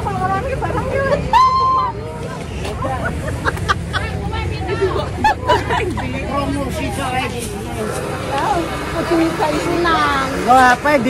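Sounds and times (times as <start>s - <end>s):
women chattering and laughing: 0.0s - 10.5s.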